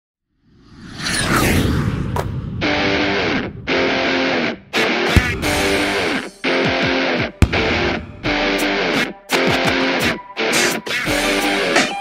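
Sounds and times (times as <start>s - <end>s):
sweeping glides: 0.4s - 4.7s
whoosh: 0.4s - 4.7s
low rumble: 0.5s - 4.7s.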